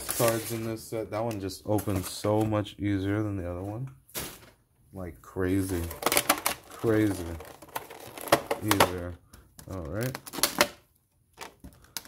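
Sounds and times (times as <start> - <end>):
plastic insert clicking and crackling: 5.9 - 12.0.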